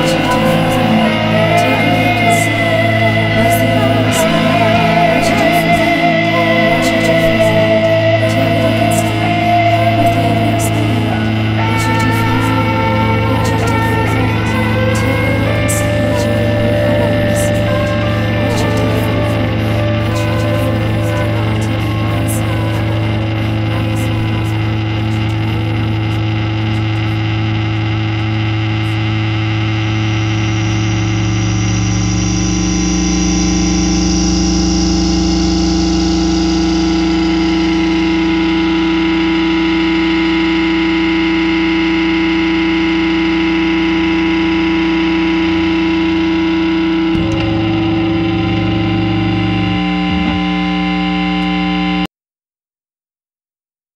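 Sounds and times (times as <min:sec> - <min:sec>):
distorted guitar drone: 0:00.0 - 0:52.1.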